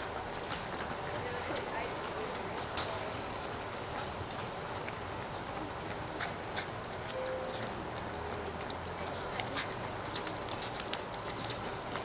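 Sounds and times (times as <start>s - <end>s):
outdoor background noise: 0.0s - 12.0s
running footsteps on pavement: 0.0s - 12.0s.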